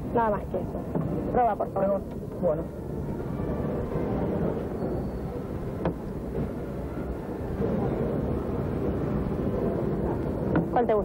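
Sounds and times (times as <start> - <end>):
faint crowd hubbub: 0.0 - 11.0.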